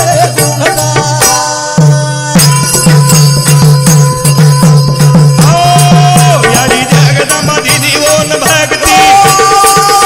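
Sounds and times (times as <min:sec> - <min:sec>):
drum beating evenly: 0:00.0 - 0:10.0.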